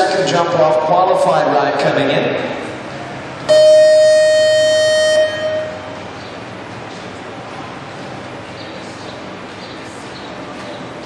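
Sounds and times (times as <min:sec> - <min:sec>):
electronic horn tone: 0:03.5 - 0:06.0.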